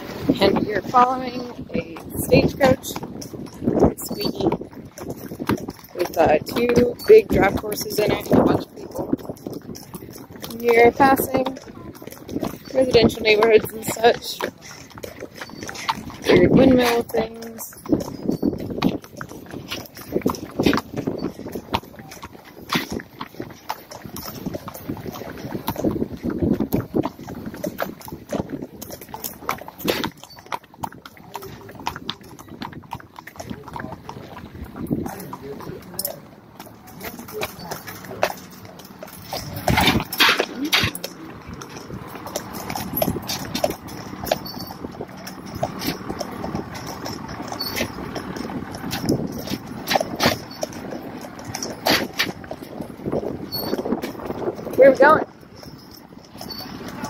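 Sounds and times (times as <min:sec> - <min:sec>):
horse hooves on pavement: 0:00.0 - 0:57.0.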